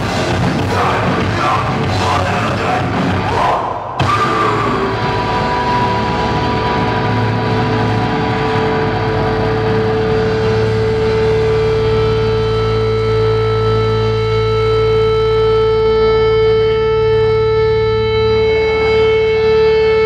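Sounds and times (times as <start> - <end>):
electric guitar feedback tone: 0.0 - 20.0
low amplifier hum: 4.0 - 20.0.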